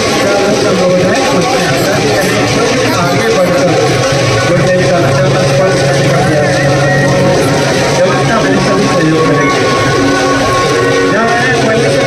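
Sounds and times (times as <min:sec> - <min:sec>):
crowd voices: 0:00.0 - 0:12.0
steady low hum: 0:01.0 - 0:11.1.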